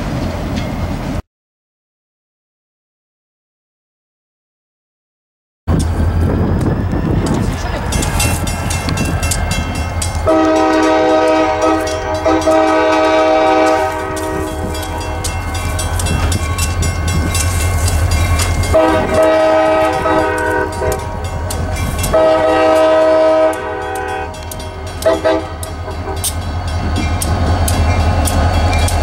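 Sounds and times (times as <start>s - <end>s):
locomotive engine rumbling: 0.0s - 1.2s, 5.7s - 29.0s
train air horn blasts: 10.2s - 15.3s, 18.7s - 21.3s, 22.0s - 26.3s.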